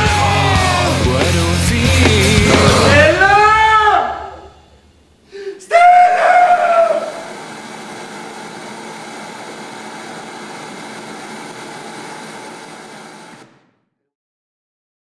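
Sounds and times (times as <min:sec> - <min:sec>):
loud drawn-out cry: 0:00.0 - 0:01.4, 0:02.3 - 0:04.6, 0:05.3 - 0:07.3.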